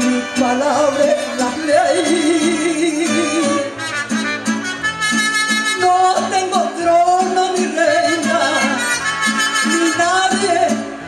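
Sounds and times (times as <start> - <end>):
trumpet: 0.0 - 6.6, 8.0 - 10.6
strummed guitar and bass rhythm: 0.0 - 11.0.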